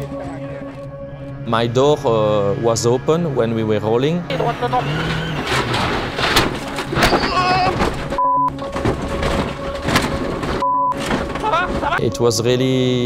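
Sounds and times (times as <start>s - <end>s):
rally car engine noise: 4.3s - 12.0s
car body crunching on ground: 4.4s - 12.0s.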